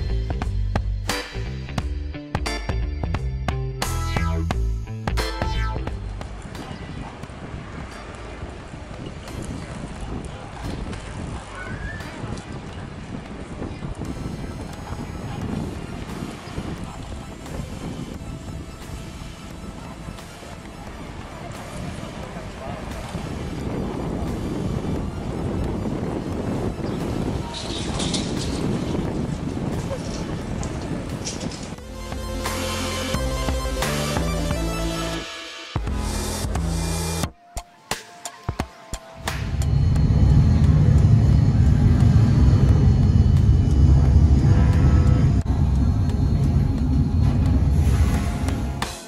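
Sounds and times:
music: 0:00.0 - 0:49.0
wind buffeting microphone: 0:06.2 - 0:31.8, 0:39.4 - 0:48.8
loud steady low rumble: 0:39.3 - 0:49.0
outboard motors running: 0:39.4 - 0:48.9.

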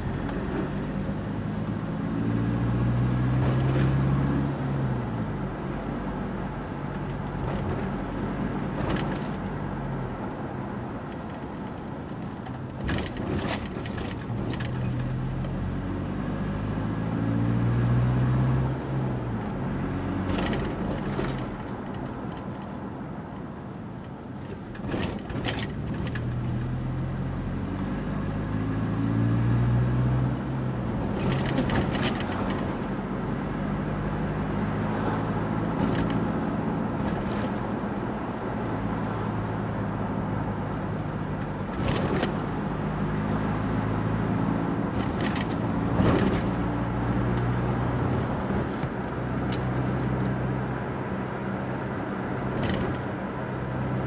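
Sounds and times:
car engine accelerating: 0:00.0 - 0:10.3, 0:12.9 - 0:21.8
road noise inside car: 0:00.0 - 0:54.0.

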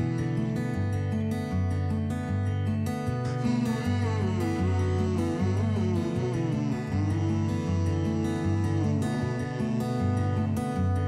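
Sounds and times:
acoustic guitar music: 0:00.0 - 0:11.0.

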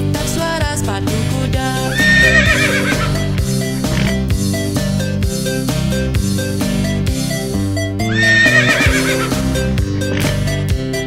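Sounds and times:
background music: 0:00.0 - 0:11.0
horse whinnying: 0:02.0 - 0:03.3, 0:08.1 - 0:09.5.

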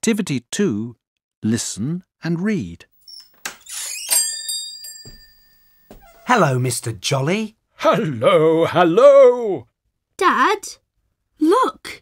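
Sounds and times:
bright metallic chime: 0:03.0 - 0:06.4.

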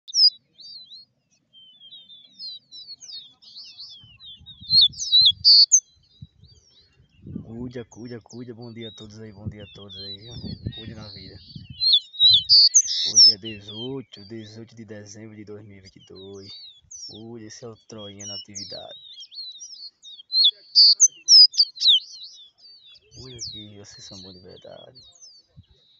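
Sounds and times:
bird singing high chirps: 0:00.0 - 0:25.9.

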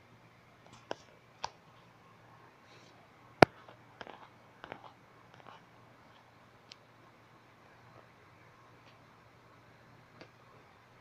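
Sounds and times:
low steady background noise: 0:00.0 - 0:11.0
faint clicks and taps: 0:00.6 - 0:01.8, 0:03.4 - 0:06.9.

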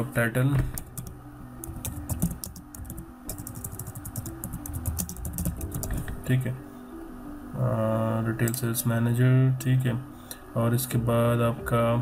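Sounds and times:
background music: 0:00.0 - 0:12.0
keyboard typing: 0:00.8 - 0:06.2.

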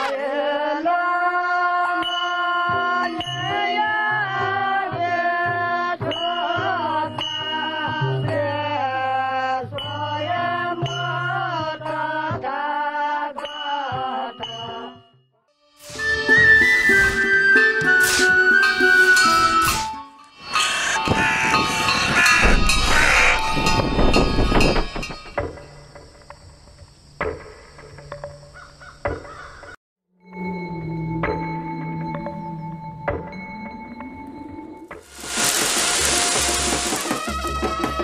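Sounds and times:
crows cawing: 0:20.5 - 0:23.8, 0:28.6 - 0:29.8.

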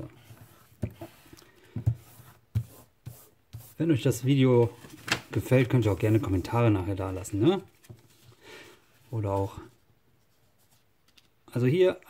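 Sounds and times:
paper creasing and rustling: 0:04.6 - 0:06.6, 0:07.2 - 0:11.4.

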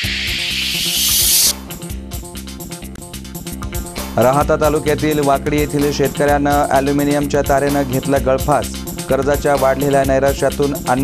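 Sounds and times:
hissing whoosh effect: 0:00.0 - 0:01.6
music with a beat: 0:00.0 - 0:11.0.

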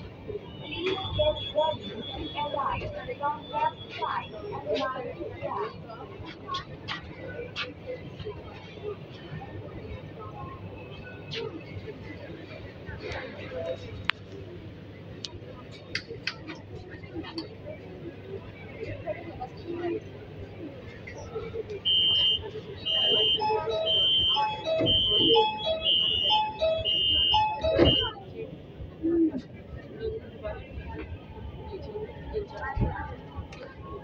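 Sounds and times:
high electronic warning beep: 0:21.9 - 0:28.1.

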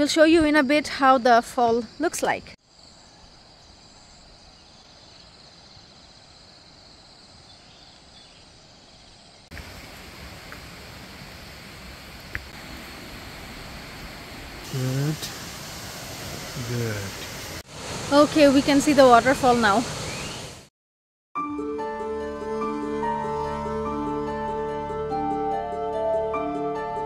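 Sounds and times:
outdoor hiss: 0:00.1 - 0:20.7
high-pitched insect buzz: 0:22.3 - 0:24.6.

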